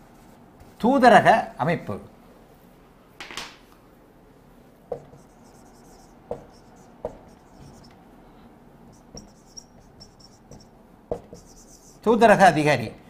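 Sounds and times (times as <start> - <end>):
sharp knocks: 4.9 - 5.3, 6.3 - 7.8, 10.4 - 11.5
marker squeaking on whiteboard: 4.9 - 8.0, 8.9 - 12.1.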